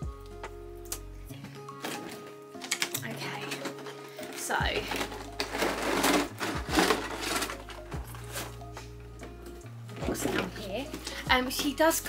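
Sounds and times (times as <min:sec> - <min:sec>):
background music: 0:00.0 - 0:12.0
plastic packaging crinkling: 0:01.7 - 0:08.6.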